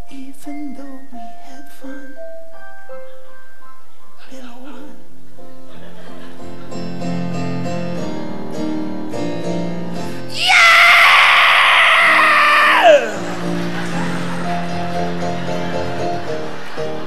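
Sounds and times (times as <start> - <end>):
heavy metal scream: 10.3 - 13.3.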